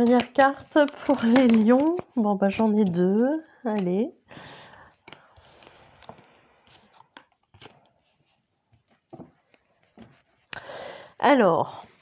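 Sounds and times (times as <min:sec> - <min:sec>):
cards tapping and clicking: 0:00.0 - 0:02.1
cards sliding on cloth: 0:04.4 - 0:10.3.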